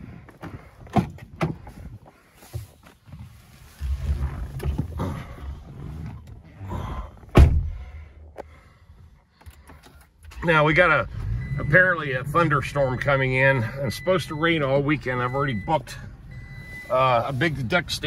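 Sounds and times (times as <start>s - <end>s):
rustling and thumps: 0.3s - 6.5s
car door shutting thud: 7.3s - 7.8s.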